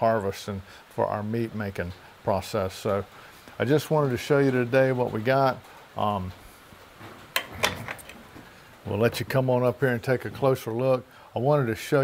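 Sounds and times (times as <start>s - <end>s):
metal latches clicking: 7.4s - 8.2s.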